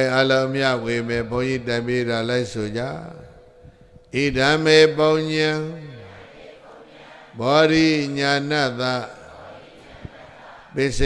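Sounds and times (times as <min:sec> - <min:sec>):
man chanting: 0:00.0 - 0:06.1, 0:07.4 - 0:09.3, 0:10.7 - 0:11.0.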